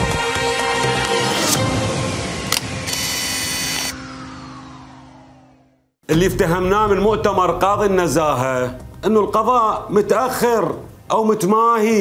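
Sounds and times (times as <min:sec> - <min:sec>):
music sting: 0:00.5 - 0:10.1.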